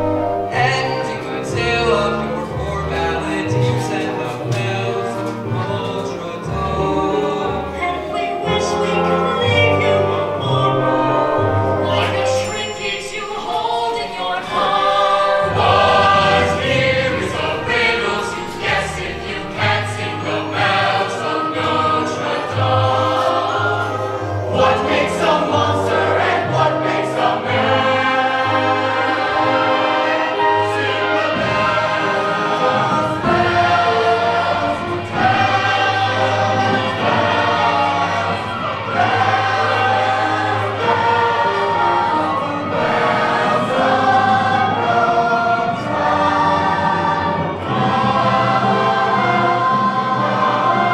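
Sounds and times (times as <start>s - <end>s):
choir singing with accompaniment: 0.0s - 50.9s.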